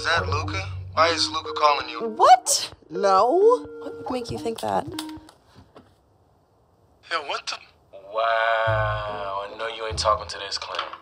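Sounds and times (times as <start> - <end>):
woman speaking: 2.1 - 5.1.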